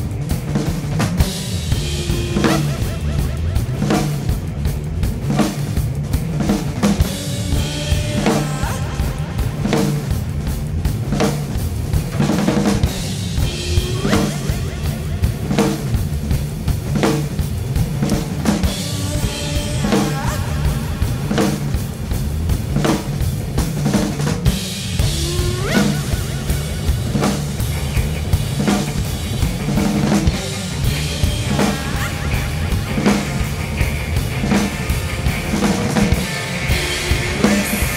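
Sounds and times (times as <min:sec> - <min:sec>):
drum kits rock beat: 0:00.0 - 0:37.9
rock recording with bass line: 0:00.0 - 0:37.9.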